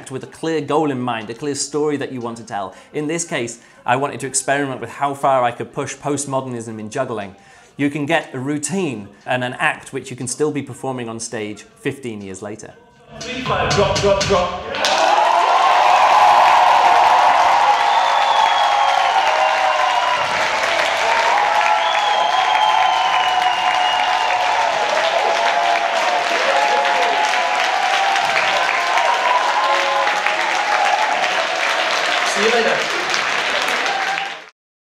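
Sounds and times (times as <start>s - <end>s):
audience applauding and cheering: 13.2s - 34.5s
drawn-out whistles: 17.7s - 20.4s, 21.6s - 24.6s.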